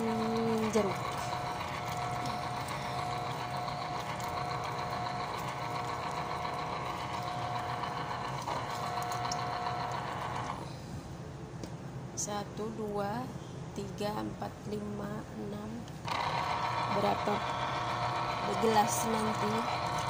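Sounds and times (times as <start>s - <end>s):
citrus juicer motor running: 0.0s - 10.7s, 16.0s - 20.0s.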